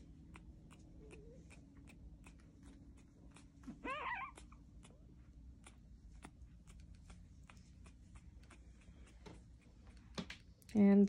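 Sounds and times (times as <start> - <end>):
puppy squealing: 3.0 - 5.0.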